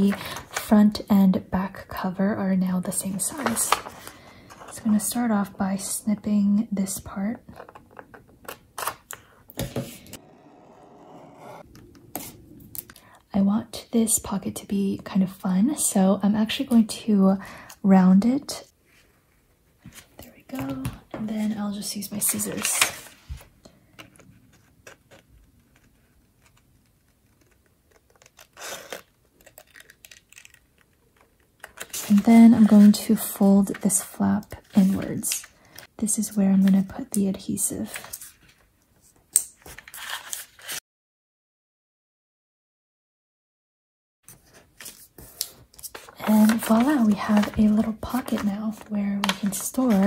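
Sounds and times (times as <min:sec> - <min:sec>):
paper handling: 0:44.3 - 0:50.0.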